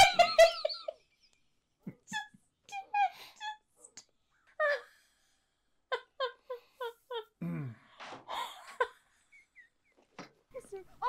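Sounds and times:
woman laughing hard: 0:00.0 - 0:01.0.

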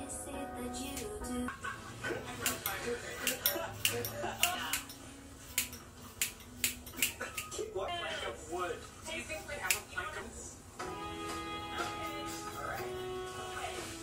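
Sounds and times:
scissors snipping hair: 0:02.4 - 0:07.6, 0:09.6 - 0:10.0.

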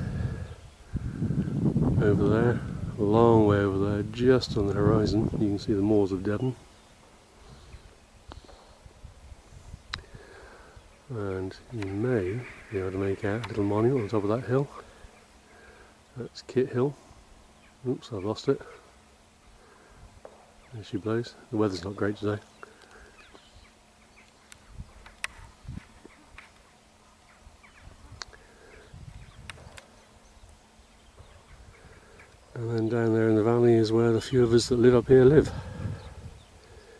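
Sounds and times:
low uneven rumble: 0:00.0 - 0:36.9.

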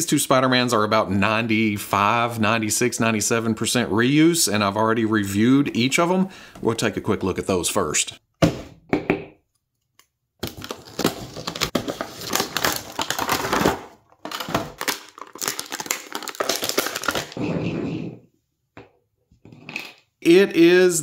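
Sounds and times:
plastic packaging crackling: 0:10.4 - 0:17.4.

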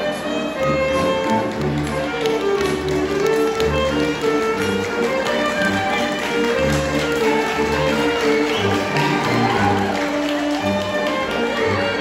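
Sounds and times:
alto saxophone solo: 0:00.0 - 0:12.0
brass and woodwind accompaniment: 0:00.0 - 0:12.0
tubas playing low bass line: 0:00.5 - 0:10.0.

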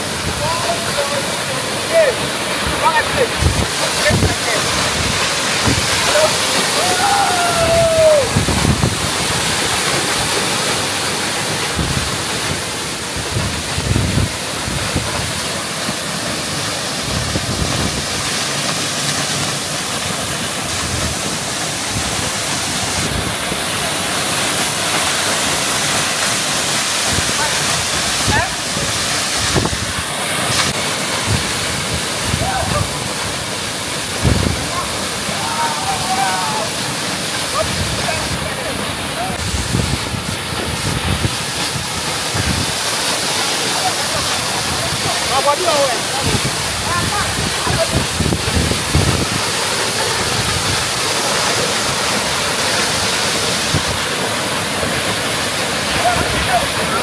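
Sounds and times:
waterfall rushing: 0:00.0 - 0:57.0.

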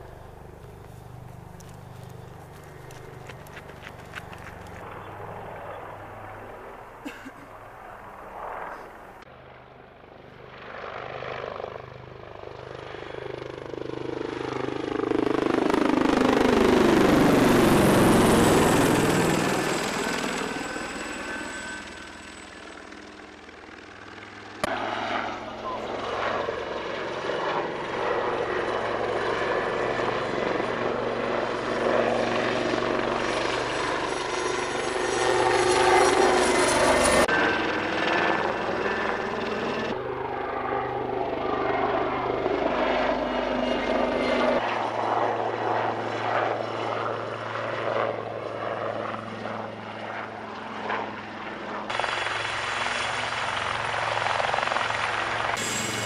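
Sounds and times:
helicopter rotor and turbine: 0:00.0 - 0:56.0.

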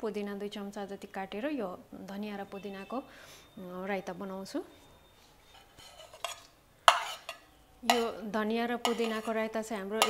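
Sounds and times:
spoon scraping plate: 0:05.4 - 0:08.2, 0:08.8 - 0:09.5
spoon clinking against dishes: 0:05.5 - 0:08.2, 0:08.8 - 0:10.0.

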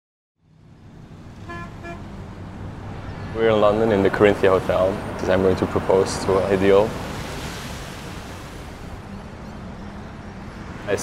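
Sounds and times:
city traffic rumble: 0:00.4 - 0:11.0
car horn toots: 0:01.4 - 0:02.1.

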